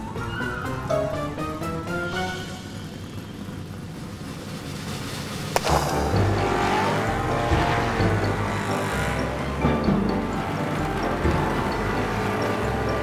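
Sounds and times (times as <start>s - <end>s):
background music: 0.0s - 3.0s, 5.6s - 13.0s
loud low engine rumble: 0.0s - 13.0s
sharp crack: 5.4s - 6.3s.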